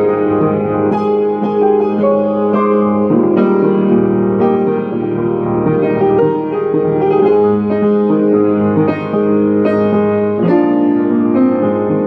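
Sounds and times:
upright piano chords: 0.0s - 12.0s.

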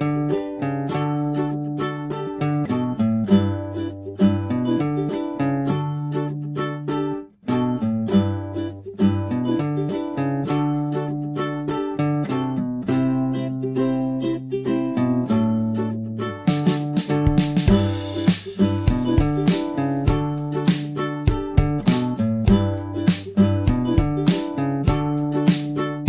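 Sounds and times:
plucked ukulele music: 0.0s - 26.0s.

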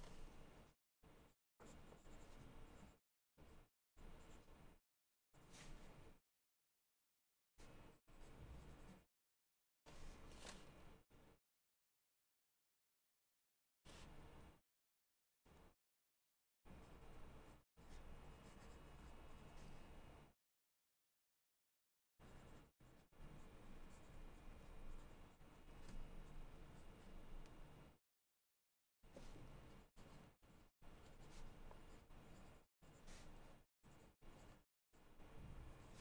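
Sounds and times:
pen scratching on paper: 1.6s - 3.0s, 16.8s - 19.9s, 22.2s - 27.4s, 29.1s - 36.0s.

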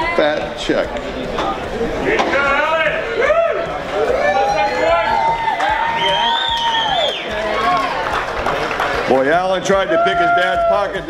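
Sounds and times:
long drawn-out shout: 2.8s - 8.0s
crowd cheering and whooping: 2.8s - 9.0s, 9.7s - 11.0s.

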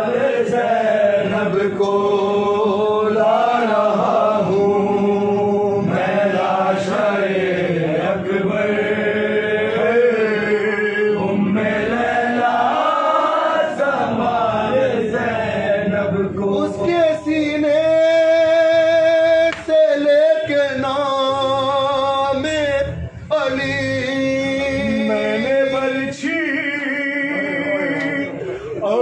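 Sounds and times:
man chanting a mourning lament: 16.0s - 29.0s.

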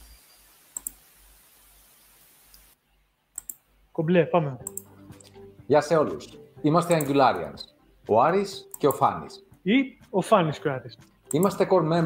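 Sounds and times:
tv static hiss: 0.0s - 3.0s
short clicks: 0.8s - 1.0s, 3.4s - 3.6s, 4.6s - 5.4s.

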